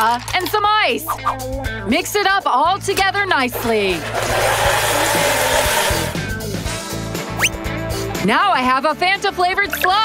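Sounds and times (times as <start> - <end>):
blender crushing ice: 3.7 - 6.2.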